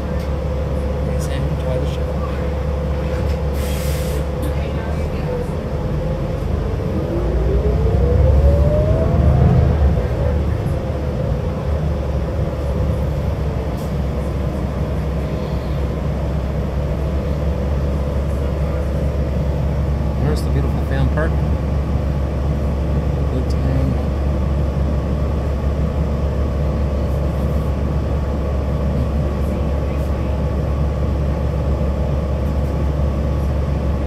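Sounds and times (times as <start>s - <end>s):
bus drivetrain rumble: 0.0s - 34.0s
short hiss: 3.5s - 4.2s
rising engine whine: 4.8s - 34.0s.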